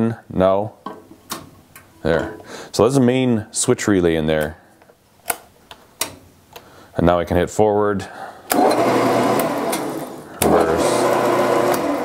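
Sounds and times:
lathe motor whirring: 0:08.5 - 0:12.0.

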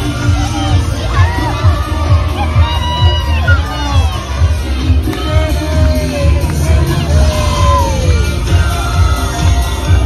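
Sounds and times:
children shouting: 0:00.0 - 0:05.6
crowd cheering: 0:00.0 - 0:10.0
parade music with bass beat: 0:00.0 - 0:10.0.

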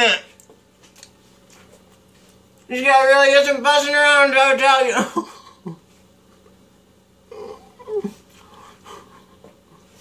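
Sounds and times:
man laughing breathily: 0:07.9 - 0:10.0.

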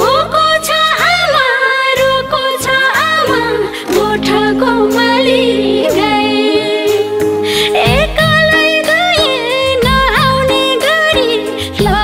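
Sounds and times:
person singing ornamented melody: 0:03.9 - 0:07.9.

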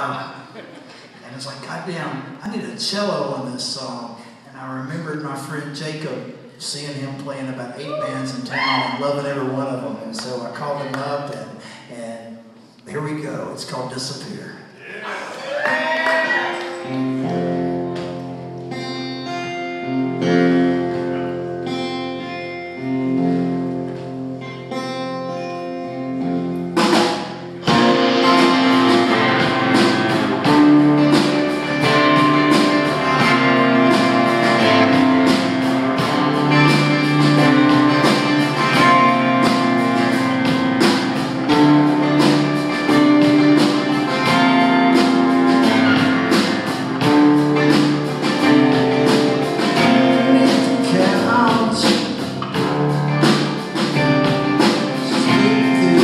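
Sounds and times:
drums: 0:00.0 - 0:56.0
rock band playing: 0:15.5 - 0:56.0
picked electric guitar: 0:16.0 - 0:56.0.

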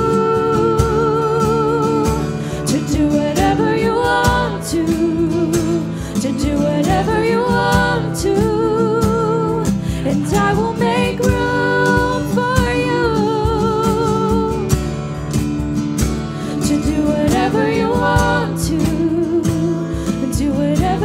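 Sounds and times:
women singing: 0:00.0 - 0:15.0, 0:16.4 - 0:21.0
cajon beat: 0:00.0 - 0:21.0
strummed acoustic guitar: 0:00.0 - 0:21.0.

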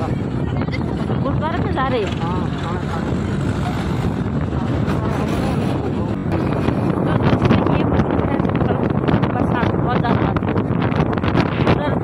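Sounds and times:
voices: 0:00.0 - 0:10.6
motorbike engine: 0:00.0 - 0:11.6
wind noise: 0:00.0 - 0:12.0.

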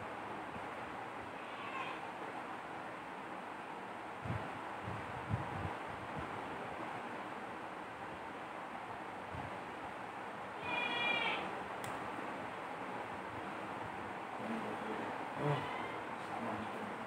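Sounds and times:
steady background hiss: 0:00.0 - 0:17.0
click: 0:11.8 - 0:12.0.

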